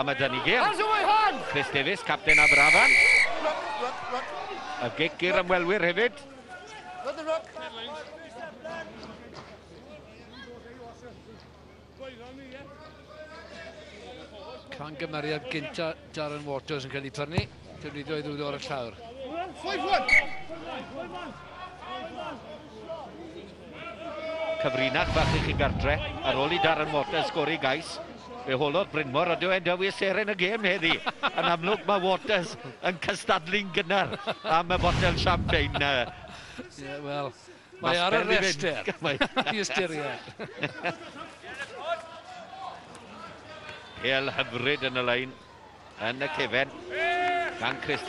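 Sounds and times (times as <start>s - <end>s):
low background noise: 0.0s - 48.0s.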